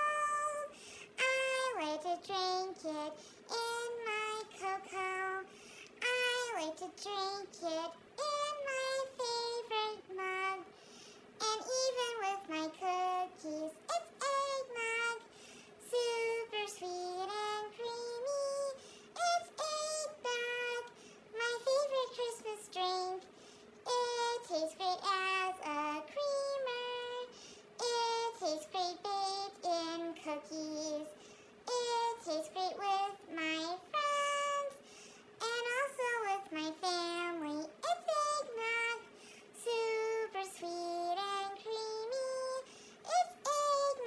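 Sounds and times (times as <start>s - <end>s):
woman singing in high-pitched voice: 0.0s - 10.7s, 11.4s - 23.2s, 23.9s - 31.1s, 31.7s - 34.8s, 35.4s - 39.0s, 39.6s - 44.0s.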